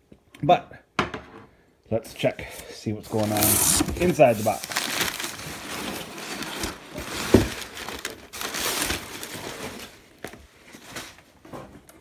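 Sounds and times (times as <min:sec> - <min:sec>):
cardboard box rustling and scraping: 0:03.1 - 0:10.0.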